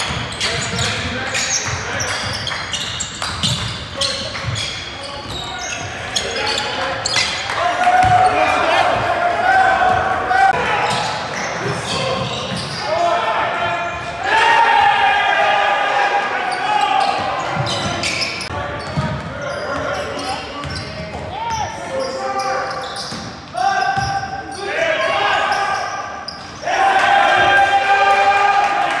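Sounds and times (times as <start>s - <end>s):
players shouting: 3.4s - 18.9s, 23.5s - 29.0s.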